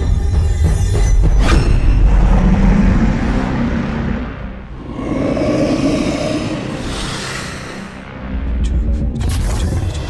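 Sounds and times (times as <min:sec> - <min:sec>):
monster growling: 0:02.5 - 0:08.2.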